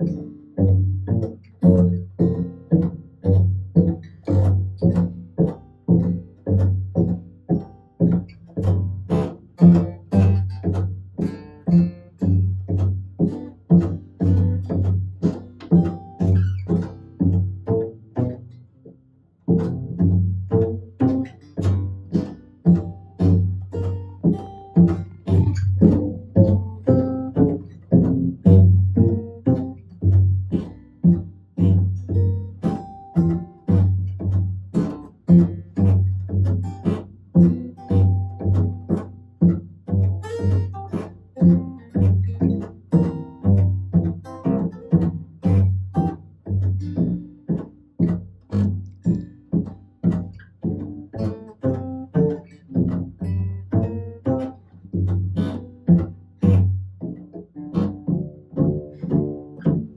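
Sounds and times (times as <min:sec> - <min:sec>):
upright bass plucked pizzicato: 0:00.0 - 0:59.9.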